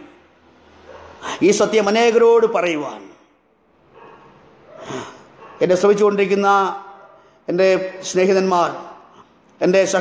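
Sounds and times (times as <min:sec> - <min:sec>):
man speaking: 0:00.0 - 0:00.3, 0:01.2 - 0:03.4, 0:04.9 - 0:10.0.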